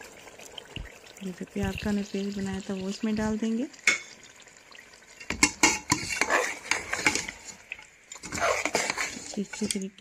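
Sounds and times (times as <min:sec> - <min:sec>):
frying sizzle: 0:00.0 - 0:10.0
metal spoon scraping pot: 0:05.2 - 0:10.0.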